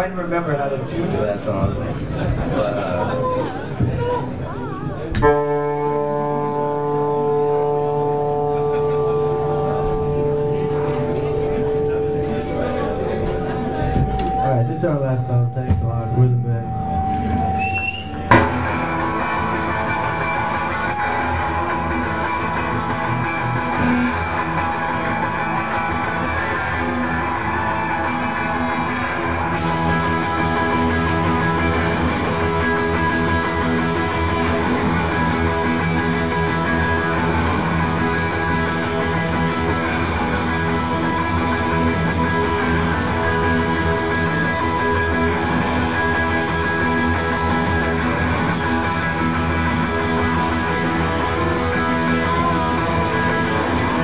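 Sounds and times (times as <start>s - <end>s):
live rock band playing: 3.5s - 15.0s, 15.7s - 54.0s.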